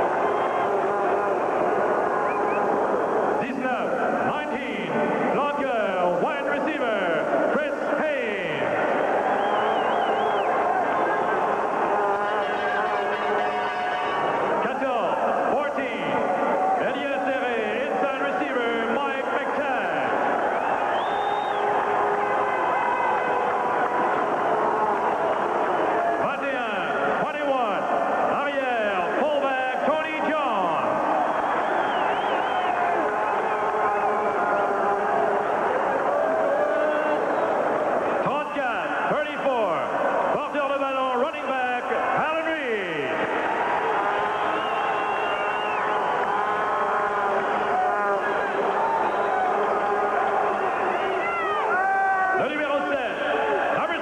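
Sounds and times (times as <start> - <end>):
stadium crowd babble: 0.0 - 54.0.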